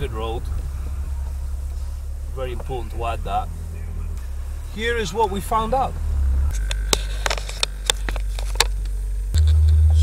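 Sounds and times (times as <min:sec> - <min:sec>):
car cabin drone: 0:00.0 - 0:10.0.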